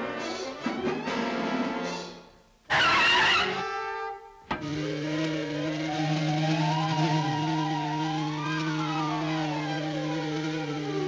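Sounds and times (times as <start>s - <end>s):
whirring drone with wavering pitch: 4.5s - 11.0s.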